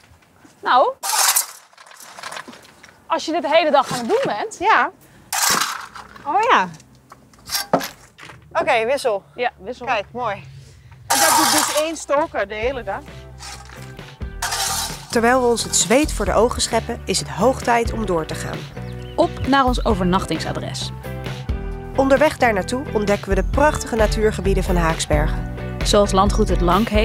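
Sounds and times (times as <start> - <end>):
shovel scraping coal: 1.0 - 3.0, 3.7 - 4.4, 5.3 - 6.4, 7.4 - 8.1, 11.1 - 12.4, 13.2 - 16.1
coal clattering: 1.0 - 4.6, 5.3 - 8.6, 11.1 - 12.4, 13.1 - 16.8
background music with held notes: 12.2 - 27.0.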